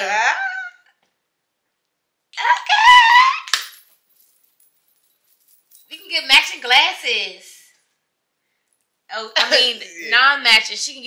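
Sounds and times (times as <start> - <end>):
high-pitched vocal squeal: 0.0 - 0.9.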